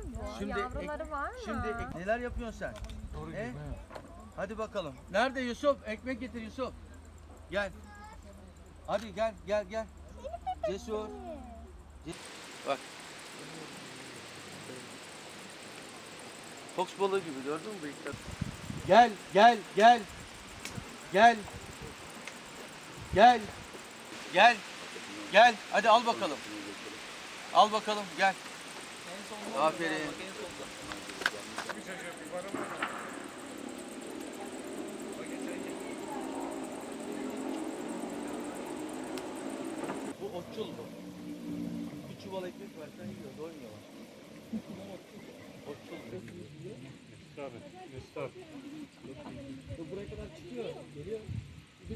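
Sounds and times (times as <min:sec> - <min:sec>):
background chatter: 0:00.0 - 0:51.9
faint distant voices: 0:00.0 - 0:51.9
outdoor background hiss: 0:00.0 - 0:51.9
sharp clicks: 0:20.5 - 0:20.9, 0:39.0 - 0:40.0.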